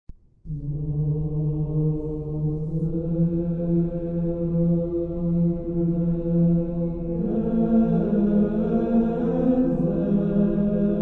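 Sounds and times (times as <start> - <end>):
slow chanted voices holding long notes: 0.5 - 11.0.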